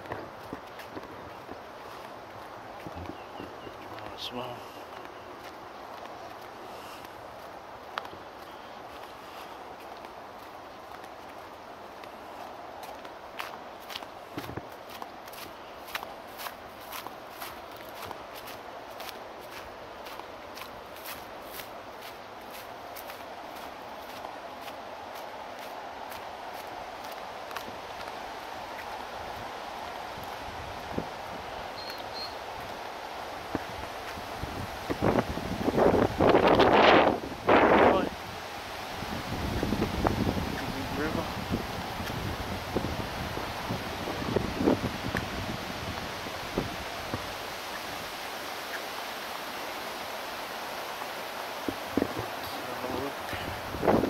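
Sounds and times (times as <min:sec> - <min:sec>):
footsteps on concrete: 0:00.0 - 0:29.0.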